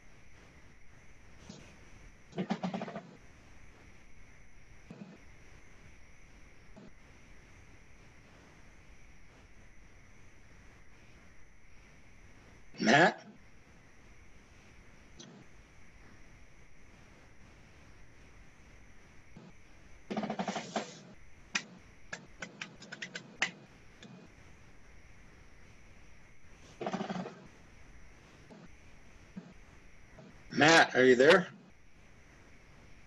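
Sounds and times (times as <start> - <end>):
faint room tone: 0.0 - 33.0
run of clicks: 21.6 - 24.2.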